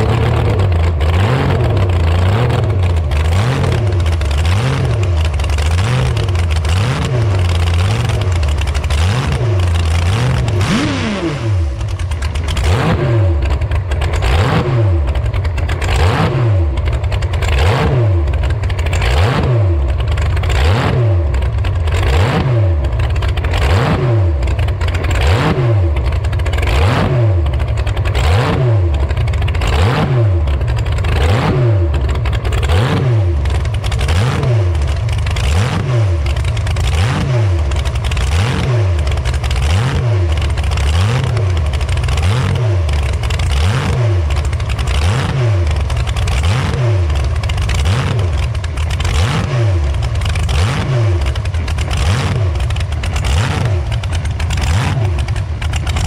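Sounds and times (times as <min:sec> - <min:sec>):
hot rod engine revving: 0:00.0 - 0:56.0.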